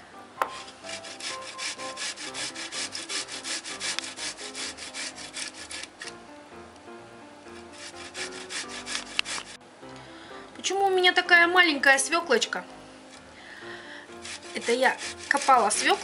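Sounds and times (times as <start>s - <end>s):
grating on a metal grater: 0.6s - 6.1s, 7.5s - 9.6s, 14.1s - 16.0s.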